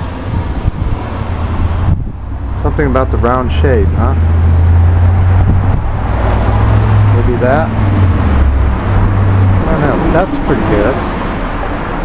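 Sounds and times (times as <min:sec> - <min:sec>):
street noise: 0:00.0 - 0:12.0
vehicle engine idling: 0:00.0 - 0:12.0.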